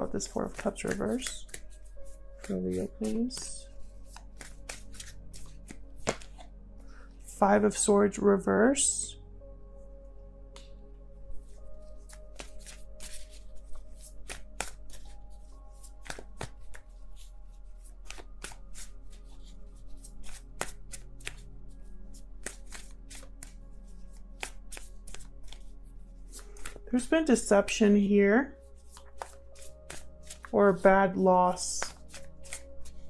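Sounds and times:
cards being shuffled: 0.0 - 6.5, 11.8 - 21.5, 22.1 - 27.3, 28.7 - 33.0
soft background music: 0.0 - 33.0.

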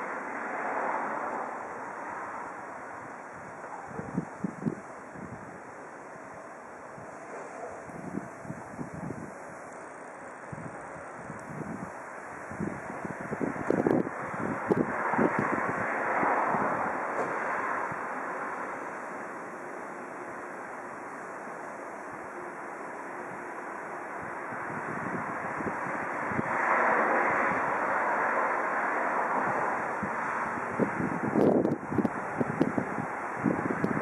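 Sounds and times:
steady rush of background noise: 0.0 - 34.0
wind buffeting microphone: 2.0 - 18.7, 23.2 - 34.0.

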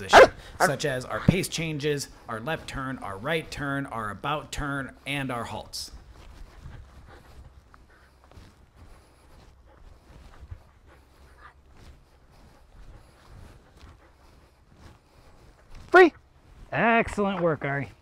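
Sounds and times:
footsteps on grass: 0.0 - 18.0.

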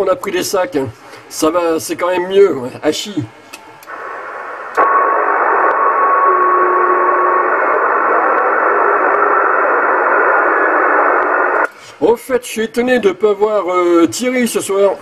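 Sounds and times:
radio static hiss: 3.9 - 12.0.

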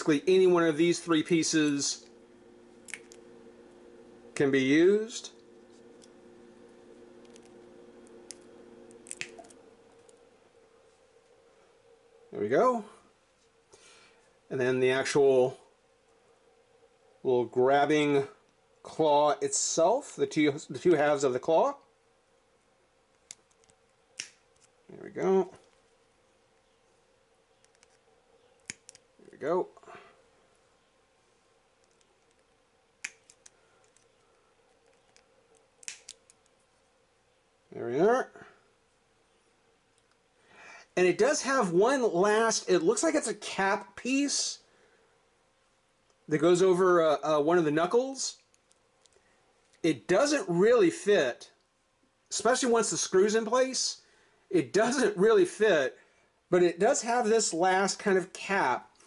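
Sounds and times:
snips clipping plastic: 35.8 - 36.5.

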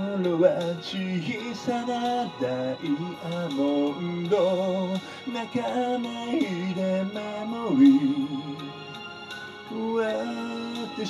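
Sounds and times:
person singing: 0.0 - 9.0, 9.7 - 11.0
instrumental accompaniment: 0.0 - 11.0.

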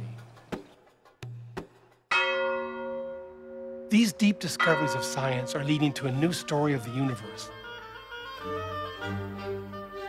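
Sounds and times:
bell-like chime ringing: 2.1 - 7.5.

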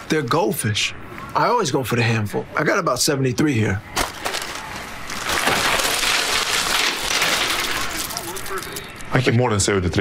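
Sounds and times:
snack bag rustling and crunching: 4.0 - 8.9.

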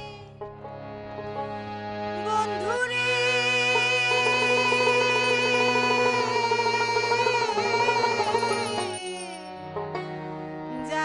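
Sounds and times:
woman singing with vibrato: 2.2 - 9.5, 10.7 - 11.0
plucked strings: 6.3 - 11.0.

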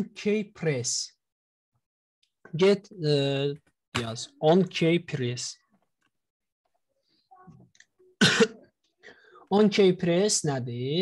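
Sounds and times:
person coughing: 8.2 - 8.7.

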